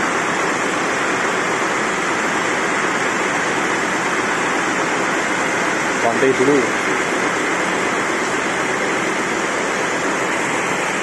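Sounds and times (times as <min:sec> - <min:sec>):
sawmill machinery roaring: 0:00.0 - 0:11.0.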